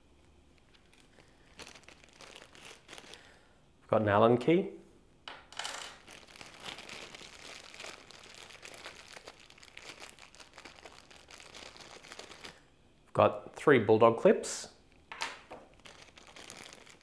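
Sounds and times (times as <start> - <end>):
plastic bag crinkling: 0.5 - 3.5, 5.9 - 12.7, 14.9 - 17.0.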